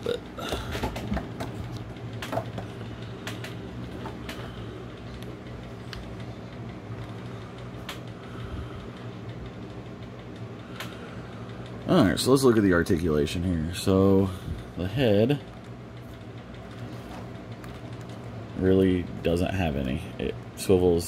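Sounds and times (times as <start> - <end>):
low background hum: 0.0 - 21.0.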